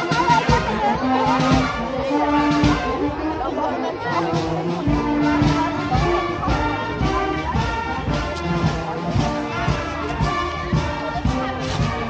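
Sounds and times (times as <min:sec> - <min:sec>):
brass band music: 0:00.0 - 0:12.0
crowd chatter: 0:00.0 - 0:12.0.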